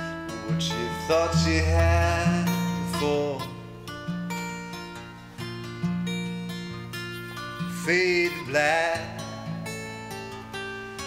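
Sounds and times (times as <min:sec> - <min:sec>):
upright bass notes: 0:00.0 - 0:04.6
strummed acoustic guitar: 0:00.0 - 0:11.0
person singing: 0:00.3 - 0:03.7, 0:07.7 - 0:09.4.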